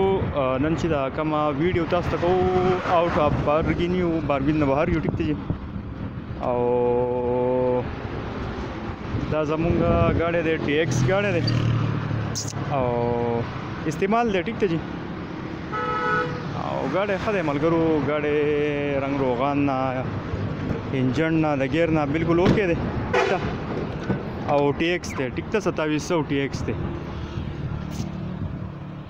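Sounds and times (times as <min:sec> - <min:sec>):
vehicle horn toot: 0:15.7 - 0:16.4, 0:23.1 - 0:23.5.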